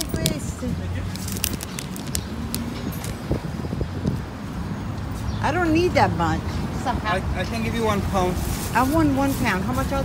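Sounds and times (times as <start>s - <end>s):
road traffic rumble: 0.0s - 10.0s
plastic bag crinkling: 1.1s - 3.2s.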